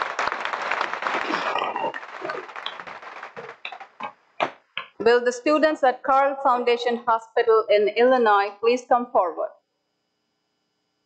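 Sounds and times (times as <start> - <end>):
audience applauding: 0.0 - 4.6.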